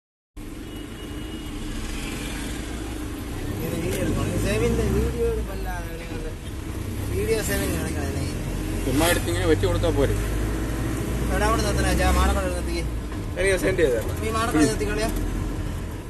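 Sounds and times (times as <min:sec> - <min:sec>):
engine and road noise drone: 0:00.4 - 0:16.0.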